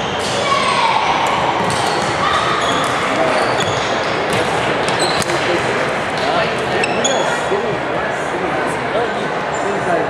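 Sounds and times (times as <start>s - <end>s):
court shoes squeaking: 0.0s - 7.6s
echoing chatter of crowd: 0.0s - 10.0s.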